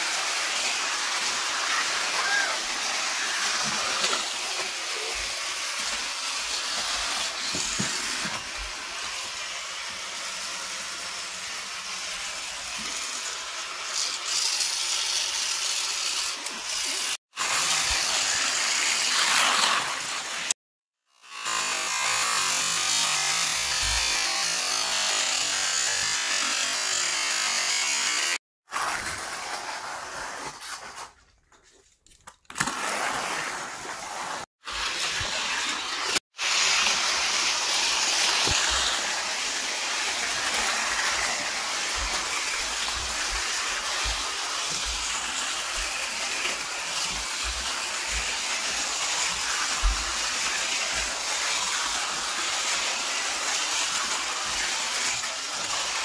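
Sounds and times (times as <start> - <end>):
toy car motors whirring: 0.2 - 22.8, 34.7 - 56.0.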